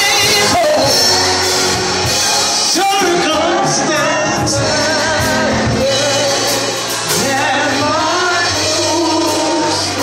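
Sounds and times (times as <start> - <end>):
band with drums and cymbals: 0.0 - 10.0.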